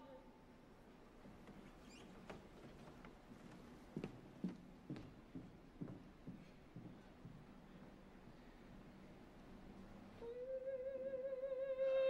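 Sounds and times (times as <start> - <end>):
faint ticks and squeaks: 1.5 - 2.4.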